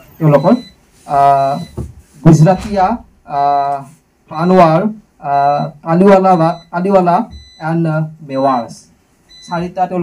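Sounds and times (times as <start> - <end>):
man talking through a microphone: 0.2 - 8.9.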